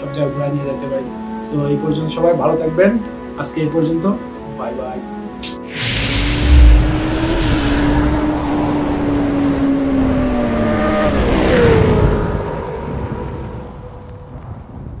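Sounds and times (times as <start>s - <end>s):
motorcycle engine revving: 5.7s - 13.2s.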